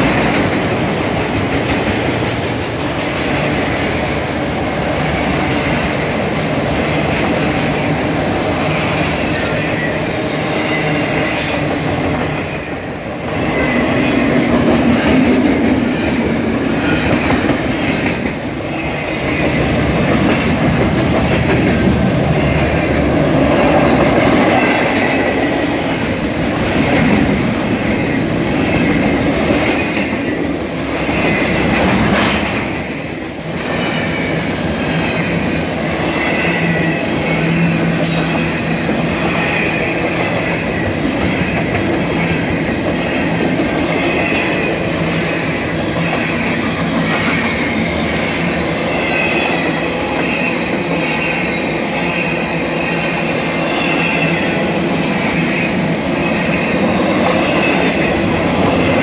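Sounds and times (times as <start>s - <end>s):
train wheels rumbling on rail: 0.0s - 59.0s
high wheel squeal: 36.0s - 58.4s.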